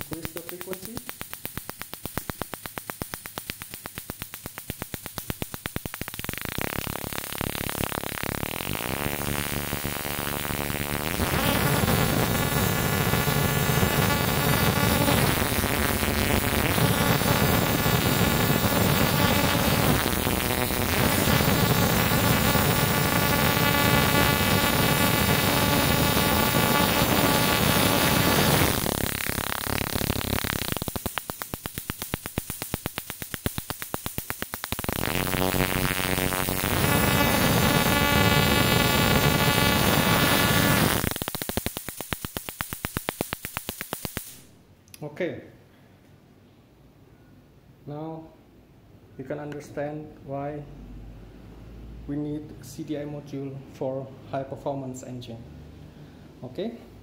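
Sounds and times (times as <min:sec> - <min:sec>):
snapping electric sparks: 0:00.0 - 0:44.5.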